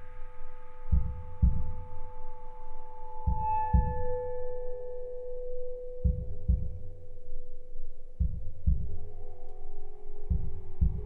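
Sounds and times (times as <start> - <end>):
steady ringing tone: 0.0 - 11.0.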